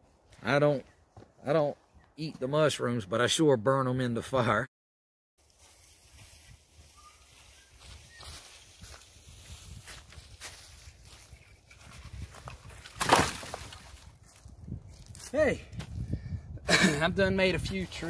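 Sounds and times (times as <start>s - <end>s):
footsteps crunching on dry leaves: 5.4s - 16.0s
wood clattering onto pile: 12.4s - 14.0s.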